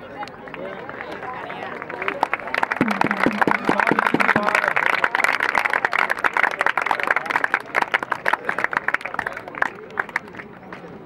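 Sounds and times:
crowd clapping: 0.2s - 11.0s.

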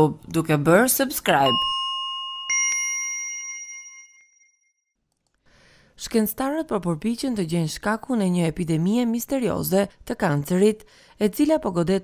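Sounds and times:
bell-like notification ding: 1.4s - 4.7s.

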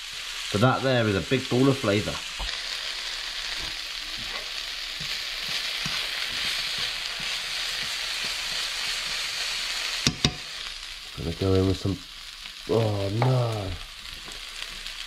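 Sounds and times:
vegetables sizzling in a pan: 0.0s - 15.0s
spatula scraping a pan: 3.5s - 10.5s.

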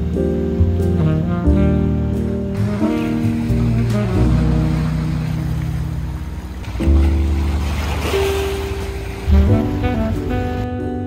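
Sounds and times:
held chords over bass line: 0.0s - 8.1s, 9.2s - 11.0s.

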